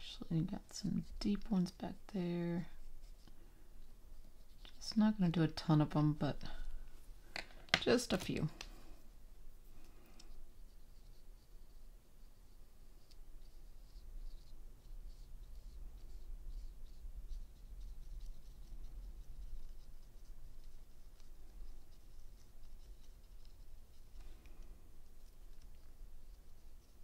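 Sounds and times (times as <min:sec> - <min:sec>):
low steady hum: 0:00.0 - 0:27.0
brush scratching on paper: 0:02.6 - 0:05.4, 0:09.5 - 0:27.0.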